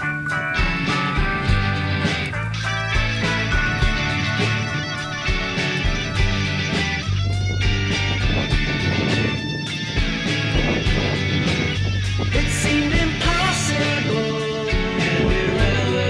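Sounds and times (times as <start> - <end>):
rock music: 0.0 - 16.0.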